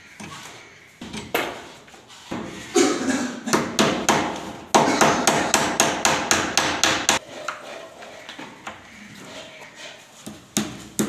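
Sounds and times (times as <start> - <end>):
claw hammer striking wooden door: 3.5 - 7.2.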